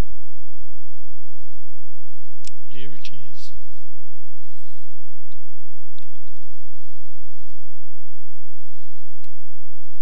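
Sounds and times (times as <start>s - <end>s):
steady low hum: 0.0s - 10.0s
computer mouse clicks: 6.0s - 6.3s.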